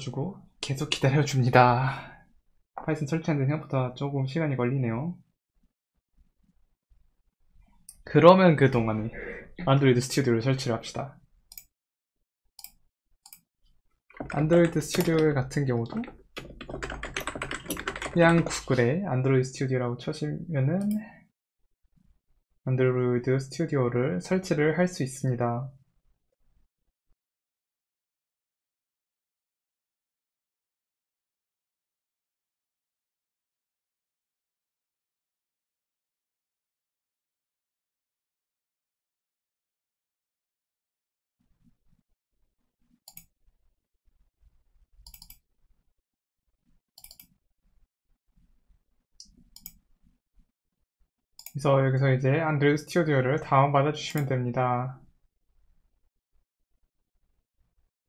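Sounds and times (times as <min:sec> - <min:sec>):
computer mouse clicks: 0:14.2 - 0:18.8, 0:45.0 - 0:45.4, 0:47.0 - 0:47.4, 0:49.2 - 0:49.8
typing on keyboard: 0:14.2 - 0:18.8.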